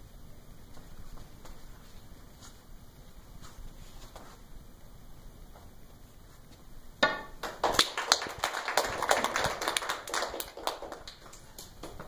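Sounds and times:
small group clapping: 7.4 - 12.0.

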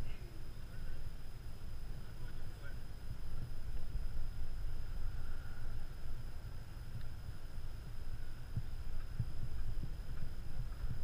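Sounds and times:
wind buffeting microphone: 0.0 - 11.0
soft irregular thumps: 3.0 - 11.0.

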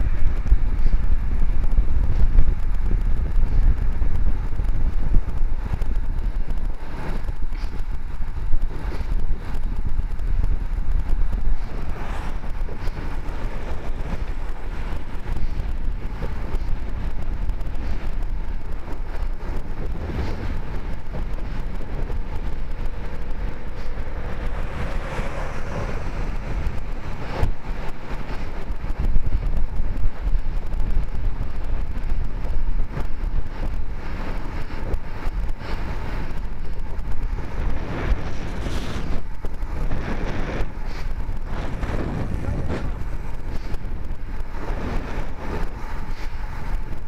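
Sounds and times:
road rumble: 0.0 - 47.0
wind rushing over microphone: 0.0 - 47.0
pickup truck passing: 23.0 - 28.6.

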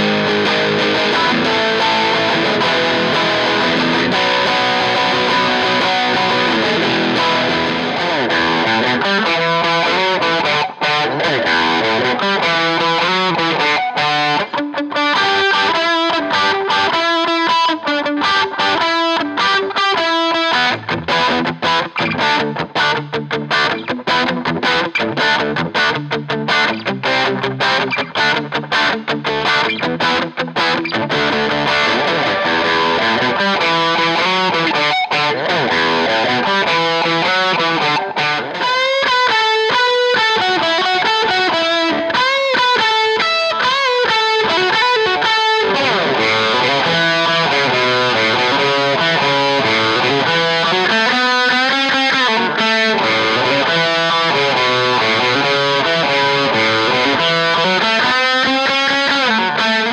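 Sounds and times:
overdriven electric guitar: 0.0 - 59.9.

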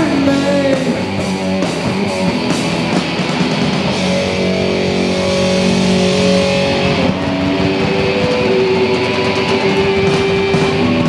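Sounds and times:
distorted electric guitar droning: 0.0 - 11.0.

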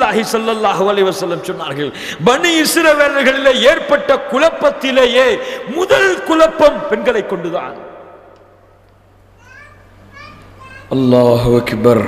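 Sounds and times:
man's amplified voice: 0.0 - 8.3, 10.9 - 12.0
steady low hum: 0.0 - 12.0.

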